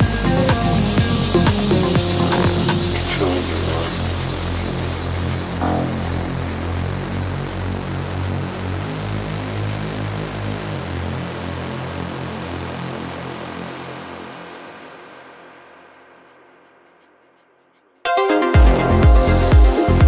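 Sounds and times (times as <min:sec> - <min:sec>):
hissing airy noise wash: 0:00.0 - 0:09.8
sustained bass line: 0:00.0 - 0:14.6, 0:18.6 - 0:20.0.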